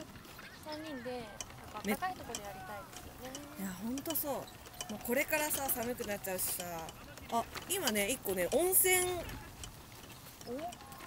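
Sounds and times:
woman speaking: 0:01.8 - 0:02.5, 0:03.4 - 0:09.3.

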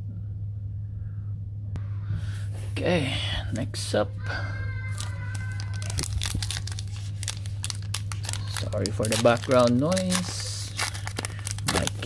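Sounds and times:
steady low hum: 0:00.0 - 0:12.0
plastic foil wrapper crinkling: 0:04.7 - 0:12.0.

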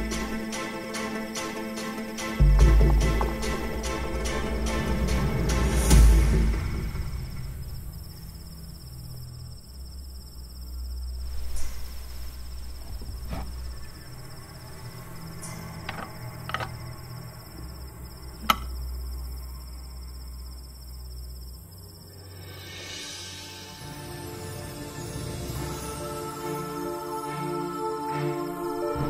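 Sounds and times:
background music: 0:00.0 - 0:08.2, 0:22.2 - 0:29.0
crickets chirping: 0:00.0 - 0:29.0
sharp clicks or knocks: 0:15.8 - 0:16.8, 0:18.4 - 0:18.8.

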